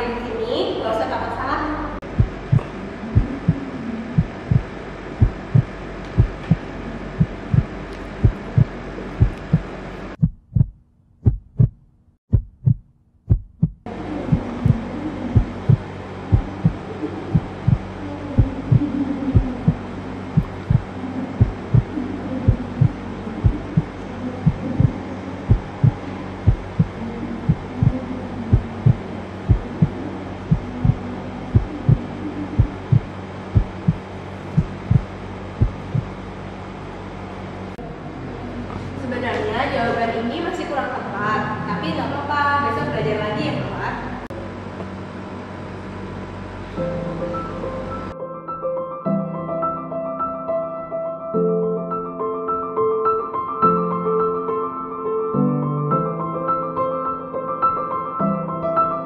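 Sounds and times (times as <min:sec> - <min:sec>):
heartbeat-like low thumps: 0:02.0 - 0:36.3.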